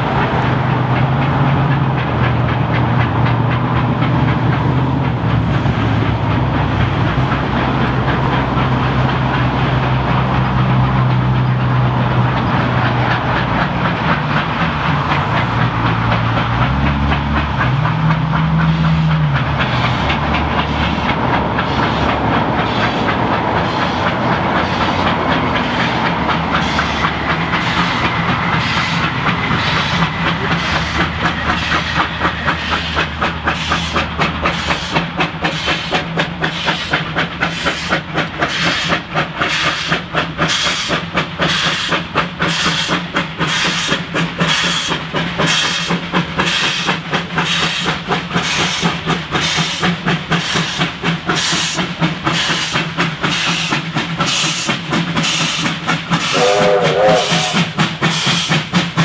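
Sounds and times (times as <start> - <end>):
steam locomotive exhaust chuffs: 0.0 - 59.0
steam whistle blast: 56.3 - 57.7.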